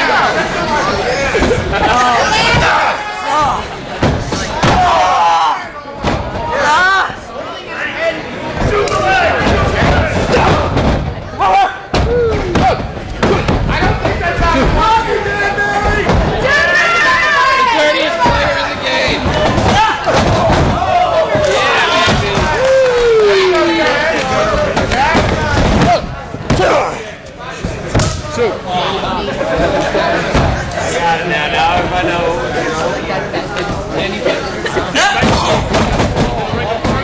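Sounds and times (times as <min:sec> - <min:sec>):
people shouting: 0:04.4 - 0:05.8, 0:08.6 - 0:24.1.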